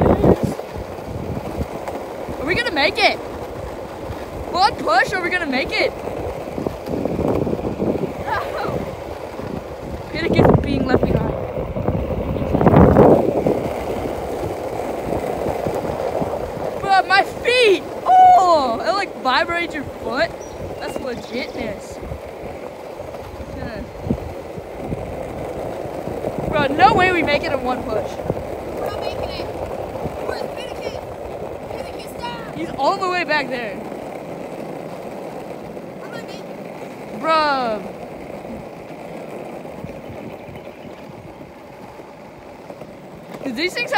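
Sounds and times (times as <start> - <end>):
skateboard wheels rumbling on asphalt: 0.0 - 43.9.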